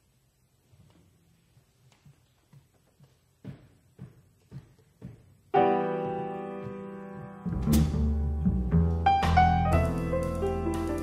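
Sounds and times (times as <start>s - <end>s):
double bass: 7.4s - 11.0s.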